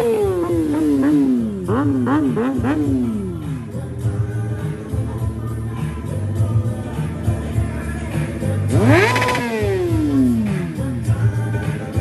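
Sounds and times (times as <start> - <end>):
motorcycle engine revving: 0.0 - 5.2, 7.5 - 12.0
background music: 0.0 - 12.0.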